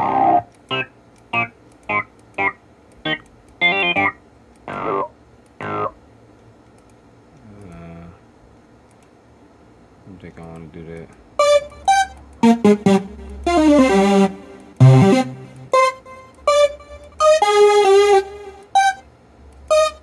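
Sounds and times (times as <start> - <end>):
short synth music snippets: 11.4 - 19.0
sliding pitch snippet: 11.4 - 19.0.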